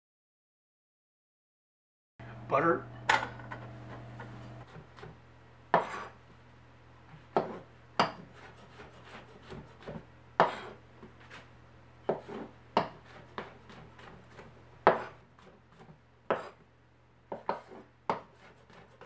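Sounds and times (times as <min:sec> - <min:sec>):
knife cutting and scraping: 0:05.8 - 0:06.2, 0:07.3 - 0:11.5, 0:12.1 - 0:16.6, 0:17.3 - 0:19.0.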